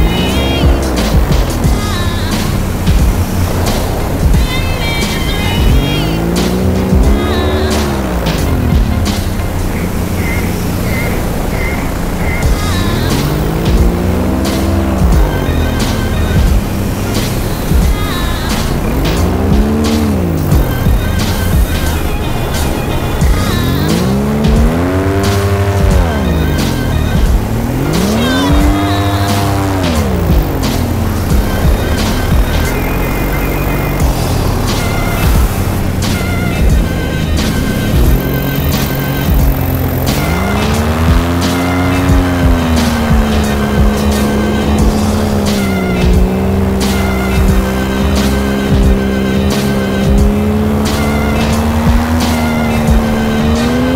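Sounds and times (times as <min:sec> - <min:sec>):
music with steady beat: 0:00.0 - 0:53.9
pitch sweeping tone: 0:00.0 - 0:53.9.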